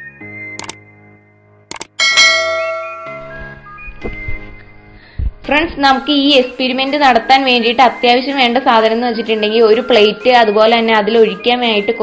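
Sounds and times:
background music: 0:00.0 - 0:12.0
quick clicks: 0:00.6 - 0:00.8, 0:01.7 - 0:02.0
bright ding: 0:02.0 - 0:03.4.

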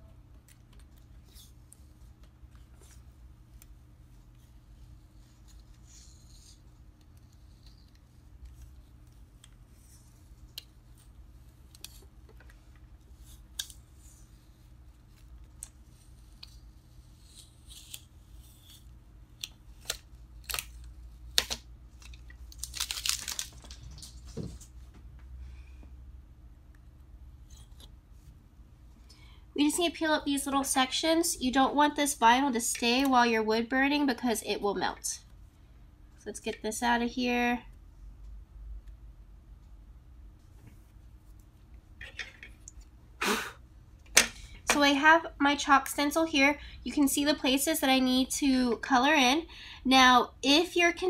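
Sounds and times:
faint low hum: 0:00.0 - 0:51.0.

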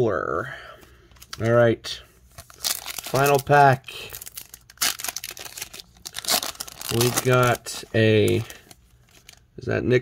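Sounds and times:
foil wrapper crinkling and tearing: 0:02.4 - 0:09.4.

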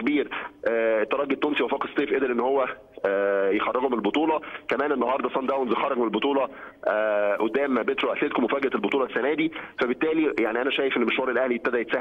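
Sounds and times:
man speaking over telephone: 0:00.0 - 0:12.0.

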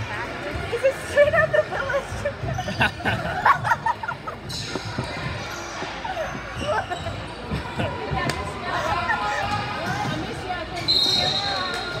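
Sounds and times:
spectators' voices and shouts: 0:00.0 - 0:12.0.

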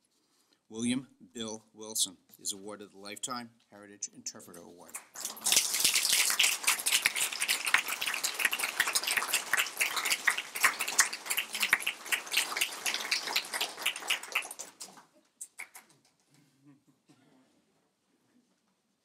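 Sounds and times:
audience applauding: 0:04.9 - 0:15.9.

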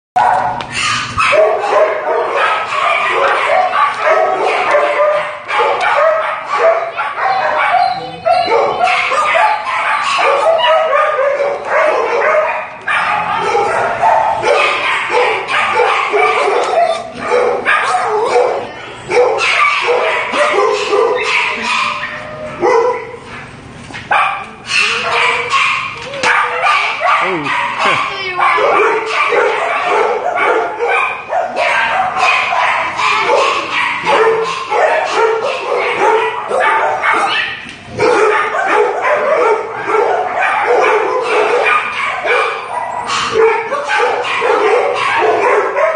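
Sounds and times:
dogs barking: 0:00.2 - 0:45.9.

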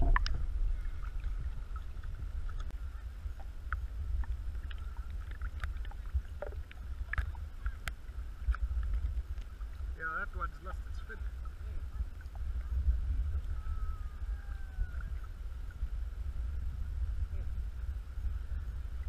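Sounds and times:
muffled waves lapping: 0:00.0 - 0:19.0
water splashes: 0:00.0 - 0:19.0.

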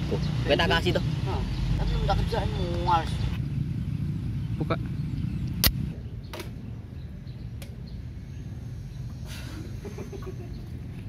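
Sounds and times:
low rumbling background noise: 0:00.0 - 0:11.0
sharp click: 0:05.5 - 0:05.8.

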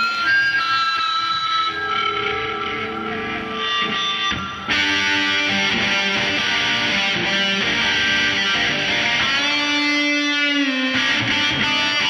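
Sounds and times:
live rock band music: 0:00.0 - 0:12.0
long held high notes: 0:00.0 - 0:12.0.

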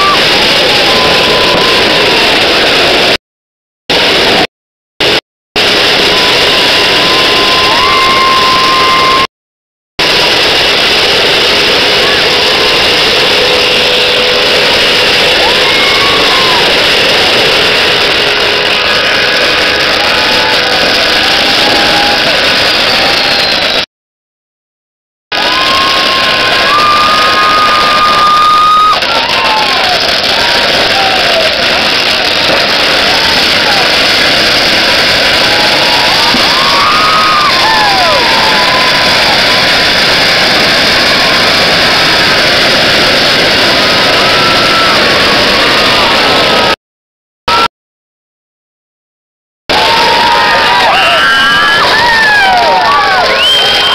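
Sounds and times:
people shouting: 0:00.0 - 0:02.4, 0:06.0 - 0:09.3, 0:11.9 - 0:23.8, 0:25.4 - 0:42.0, 0:43.8 - 0:46.8, 0:49.7 - 0:53.9
firecrackers crackling: 0:00.0 - 0:03.2, 0:03.9 - 0:09.3, 0:10.0 - 0:23.9, 0:25.3 - 0:46.8, 0:49.7 - 0:53.9.

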